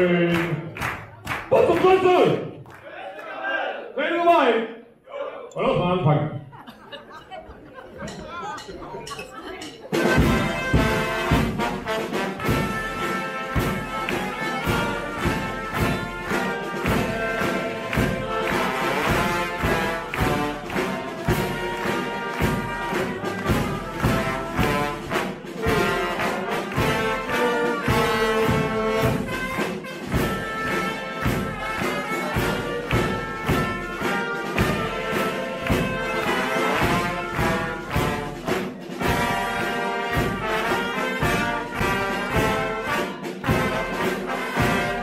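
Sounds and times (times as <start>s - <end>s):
voices: 7.4s - 10.0s
brass band playing lively tune: 8.0s - 45.0s.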